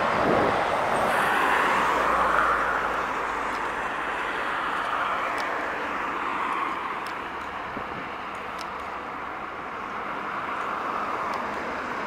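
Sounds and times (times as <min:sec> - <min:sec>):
trucks passing on highway: 0:00.0 - 0:12.0.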